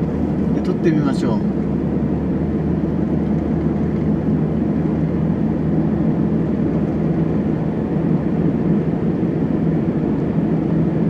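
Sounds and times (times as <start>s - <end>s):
van engine and tyre drone: 0.0s - 11.0s.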